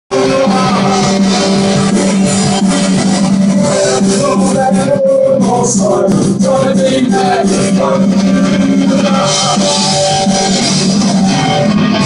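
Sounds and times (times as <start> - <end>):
drums: 0.1 - 12.0
electric guitars playing chords: 0.1 - 12.0.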